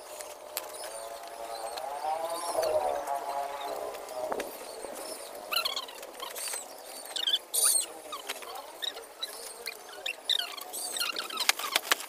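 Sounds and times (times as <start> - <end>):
dry palm fronds rustling: 0.0 - 12.0
high squeaky chirps: 4.5 - 11.8.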